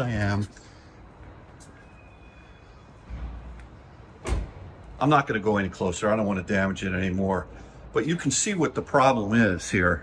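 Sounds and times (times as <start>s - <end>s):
low rumble of garage noise: 0.0s - 10.0s.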